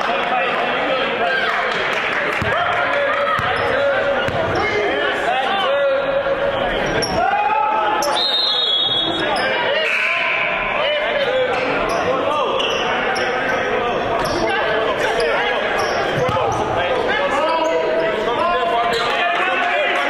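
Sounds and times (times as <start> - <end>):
crowd of voices calling: 0.0 - 20.0.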